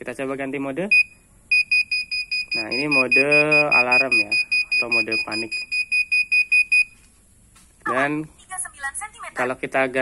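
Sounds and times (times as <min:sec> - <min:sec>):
rapid high-pitched alarm beeps: 0:00.9 - 0:07.0.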